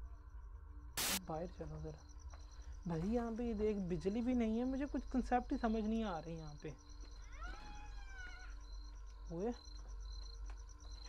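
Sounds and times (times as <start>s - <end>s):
insects chirring: 0.0s - 11.0s
long animal call: 7.2s - 8.7s.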